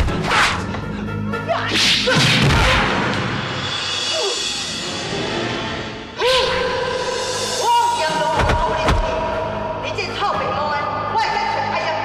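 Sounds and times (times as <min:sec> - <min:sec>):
low background music: 0:00.0 - 0:12.0.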